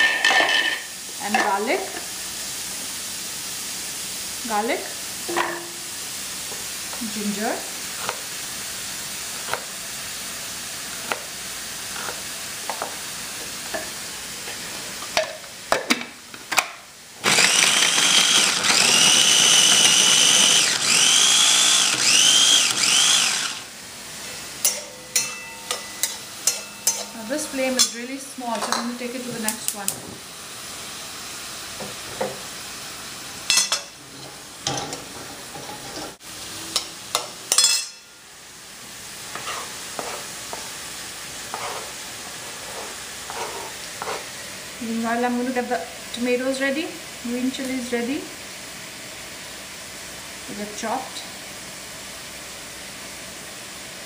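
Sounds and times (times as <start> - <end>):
onions sizzling in oil: 0.0 - 33.7, 34.4 - 50.5
food processor motor whine: 17.2 - 23.8.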